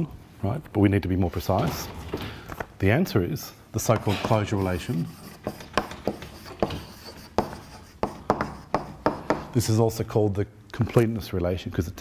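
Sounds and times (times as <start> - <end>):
chalk tapping and scraping on chalkboard: 3.8 - 9.6.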